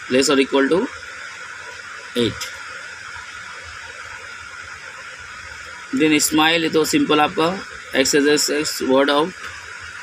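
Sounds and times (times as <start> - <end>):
steady background hiss: 0.0 - 10.0.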